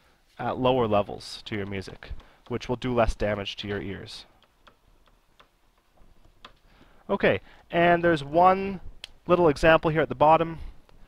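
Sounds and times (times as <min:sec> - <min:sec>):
stylus tapping on pen tablet: 0:01.4 - 0:02.9, 0:03.6 - 0:07.0.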